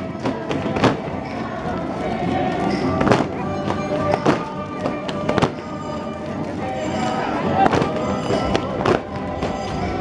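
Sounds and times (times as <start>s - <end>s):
crowd voices: 0.0s - 10.0s
live folk dance music: 0.0s - 10.0s.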